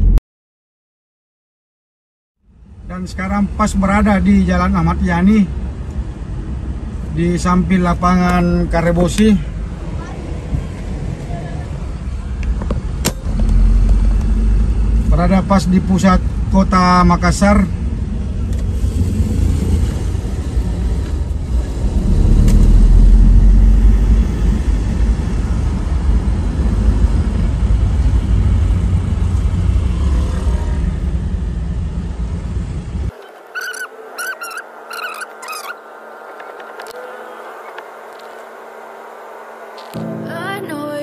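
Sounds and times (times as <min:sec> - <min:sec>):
vehicle engine rumble: 0:02.4 - 0:40.3
street noise: 0:02.4 - 0:41.0.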